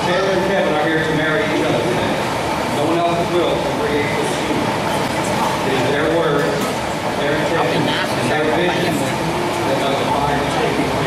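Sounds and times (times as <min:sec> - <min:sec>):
hall background noise: 0:00.0 - 0:11.0.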